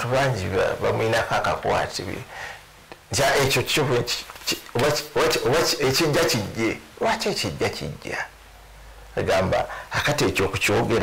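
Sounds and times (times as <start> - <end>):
man speaking: 0.0 - 2.4, 3.0 - 8.4, 9.1 - 11.0.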